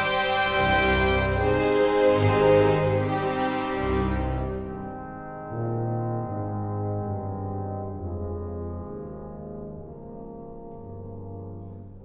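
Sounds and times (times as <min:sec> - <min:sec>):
slow low brass music: 0:00.0 - 0:12.0.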